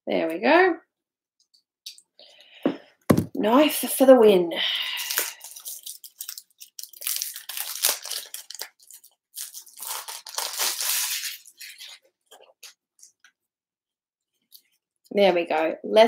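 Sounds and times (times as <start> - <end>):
plastic shrink-wrap crinkling: 5.0 - 13.1.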